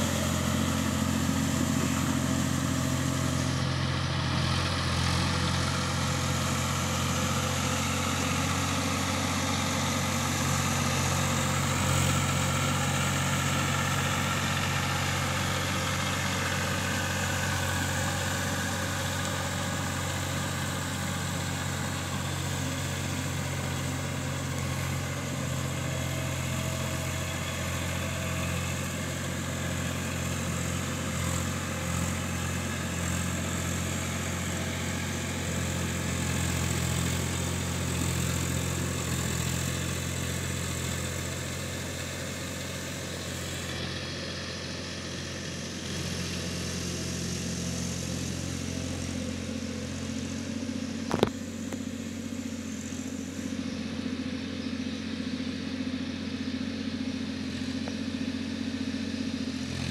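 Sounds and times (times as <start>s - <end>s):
tractor diesel engine running: 0.0s - 59.9s.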